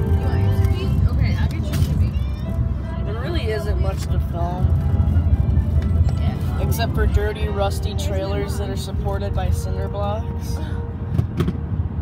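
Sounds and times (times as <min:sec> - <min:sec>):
people talking: 0:00.0 - 0:10.6
car road and engine rumble: 0:00.0 - 0:12.0.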